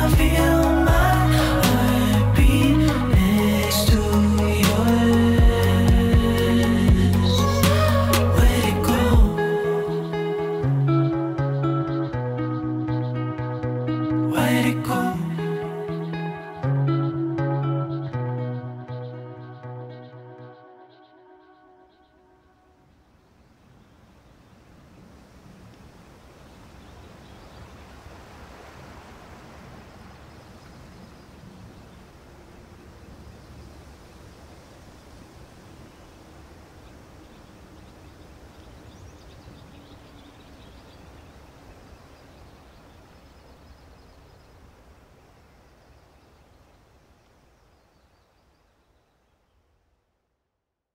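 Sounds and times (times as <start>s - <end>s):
faint outdoor noise: 0.0s - 50.9s.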